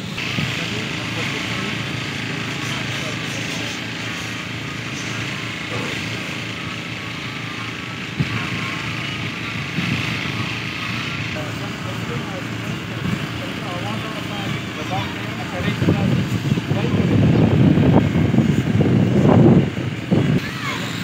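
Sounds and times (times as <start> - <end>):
engine running: 0.0 - 21.0
people talking and shouting: 0.0 - 21.0.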